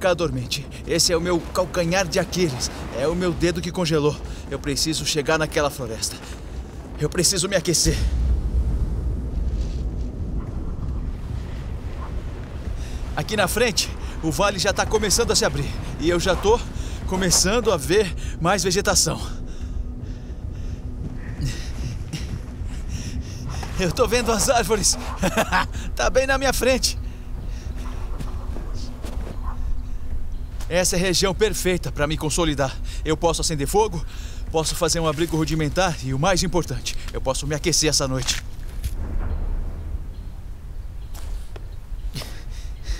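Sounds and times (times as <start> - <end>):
footsteps crunching through snow: 0.0 - 8.2, 26.7 - 31.0
branches rustling: 0.0 - 42.9
wind buffeting microphone: 0.0 - 42.9.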